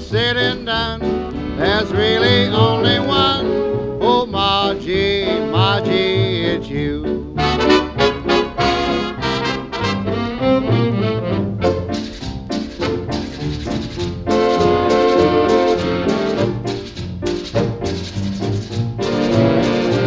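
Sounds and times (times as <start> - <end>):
big band music with brass: 0.0 - 6.8, 7.4 - 20.0.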